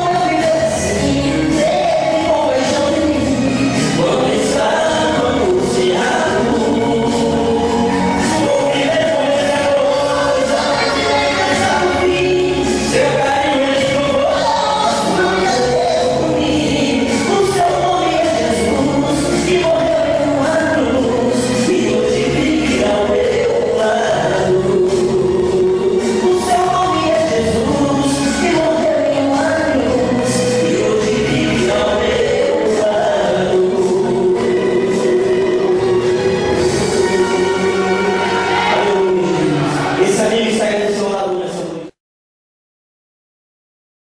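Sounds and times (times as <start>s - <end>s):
two men singing duet: 0.0s - 41.9s
accompanying music: 0.0s - 42.0s.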